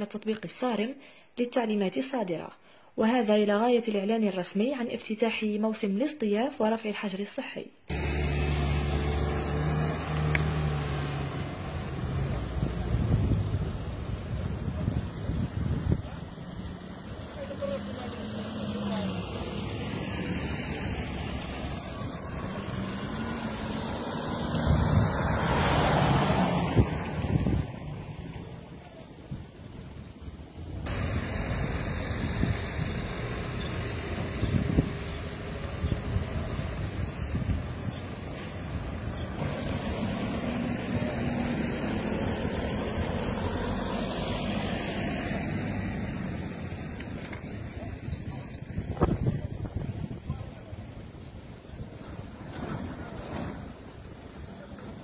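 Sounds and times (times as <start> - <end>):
background traffic: 7.8 - 55.0
car driving past: 7.9 - 14.4, 15.1 - 28.7
road and wind noise: 7.9 - 55.0
vehicle engine hum: 7.9 - 55.0.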